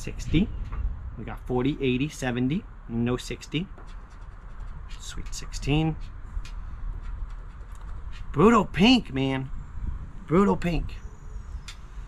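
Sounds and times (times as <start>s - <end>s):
low steady rumble: 0.0s - 12.0s.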